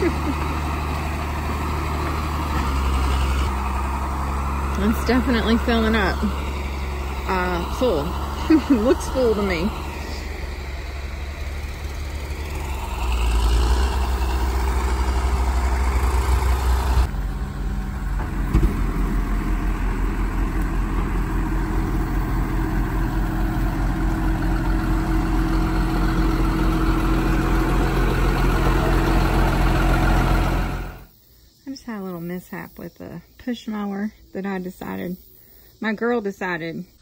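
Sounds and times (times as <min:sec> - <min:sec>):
tractor diesel engine running: 0:00.0 - 0:31.1
truck engine pulling up: 0:00.0 - 0:31.1.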